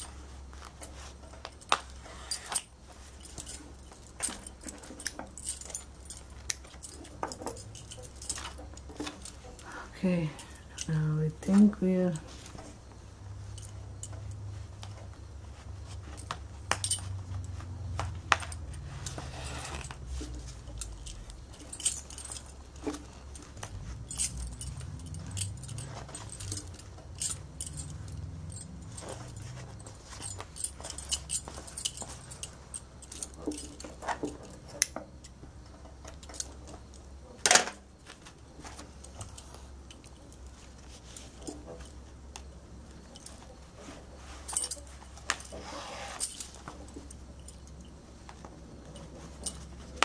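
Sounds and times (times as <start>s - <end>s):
steady low hum: 0.0s - 45.6s
bangles clinking and jingling: 0.0s - 50.0s
needle clicks and cloth rustles: 0.0s - 50.0s.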